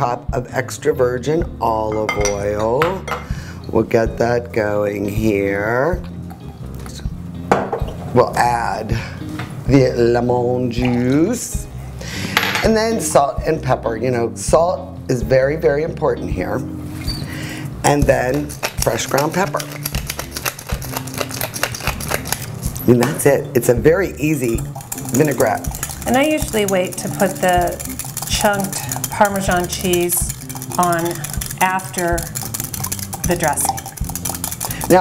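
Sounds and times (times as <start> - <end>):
soft background music: 0.0 - 35.0
glass bottle knock on stone: 7.5 - 8.0
pepper mill grinding: 17.9 - 23.3, 24.0 - 35.0
oil trickling into glass jug: 17.9 - 35.0.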